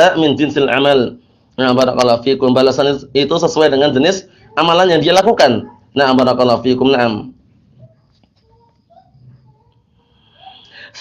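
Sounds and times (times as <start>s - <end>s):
man speaking: 0.0s - 7.4s.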